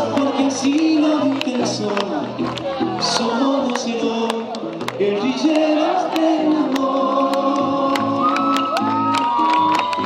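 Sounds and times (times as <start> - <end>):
bass guitar: 0.0 - 10.0
electric guitar: 0.0 - 10.0.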